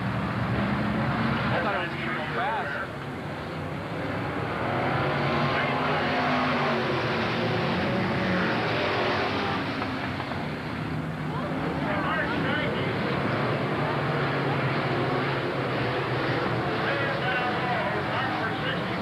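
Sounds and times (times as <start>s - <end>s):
stock car engines droning: 0.0s - 19.0s.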